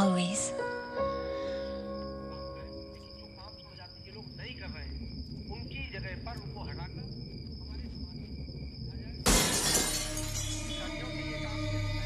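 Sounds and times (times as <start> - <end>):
faint chirping: 0.0 - 9.2
glass shattering: 9.3 - 10.8.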